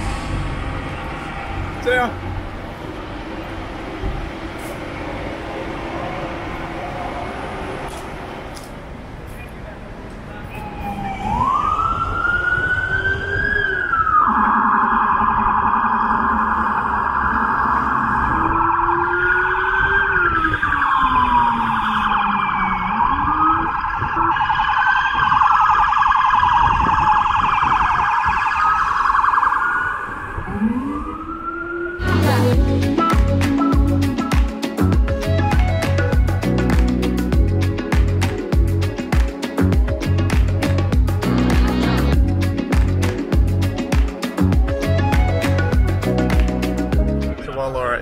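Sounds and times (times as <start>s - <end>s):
emergency vehicle sirens wailing: 0.0s - 37.6s, 44.1s - 47.4s
music: 32.0s - 47.9s.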